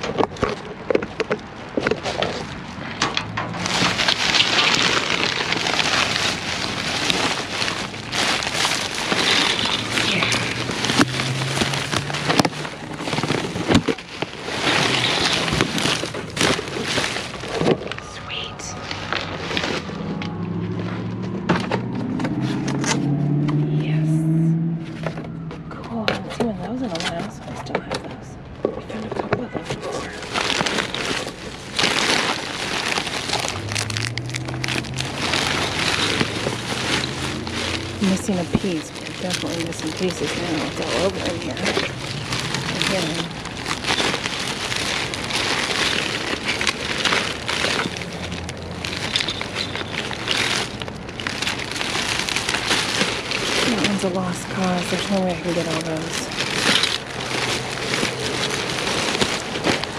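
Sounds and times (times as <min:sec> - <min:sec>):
plastic bags rustling and crinkling: 0:00.0 - 0:59.9
low wavering drone: 0:17.4 - 0:26.8.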